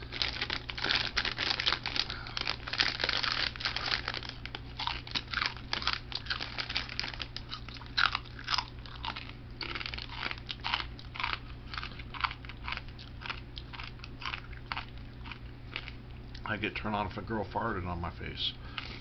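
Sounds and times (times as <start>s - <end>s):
man chewing crunchy snack: 0.0s - 16.5s.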